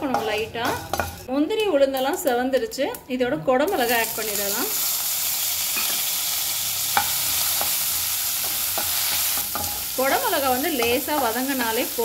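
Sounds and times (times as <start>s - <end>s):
vegetables sizzling in hot oil: 3.7s - 12.0s.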